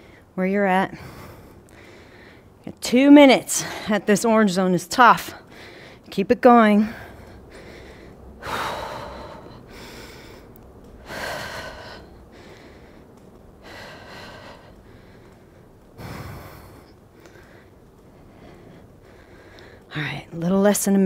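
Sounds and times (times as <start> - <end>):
woman breathing hard: 0.9 - 2.6, 5.4 - 6.1, 6.8 - 19.9.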